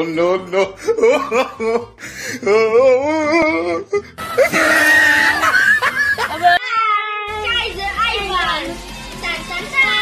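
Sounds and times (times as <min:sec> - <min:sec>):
child screaming: 0:04.4 - 0:05.6.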